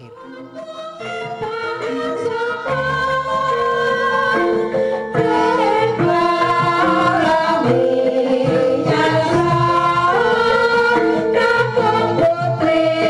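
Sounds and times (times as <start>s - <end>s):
gamelan ensemble: 0.0s - 13.0s
women singing long held notes: 0.0s - 13.0s.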